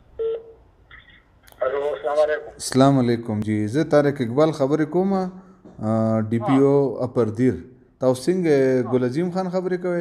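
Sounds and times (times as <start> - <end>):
electronic telephone tones: 0.2 - 0.6
man speaking: 1.6 - 10.0.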